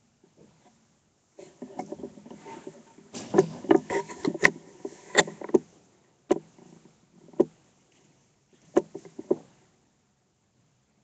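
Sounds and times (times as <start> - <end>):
microphone handling knocks and rustles: 1.4 - 9.6.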